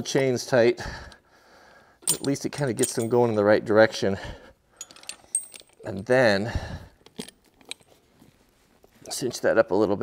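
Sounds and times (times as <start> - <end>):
metal chain links clinking: 2.0 - 3.4, 4.8 - 6.2, 7.0 - 8.0
faint handling noise: 2.0 - 3.5, 4.8 - 6.2, 7.0 - 9.5.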